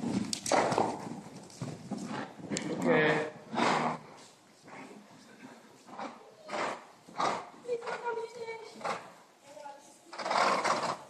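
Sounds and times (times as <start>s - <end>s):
horse hooves cantering on sand: 0.0s - 2.8s
horse breathing: 0.0s - 9.3s.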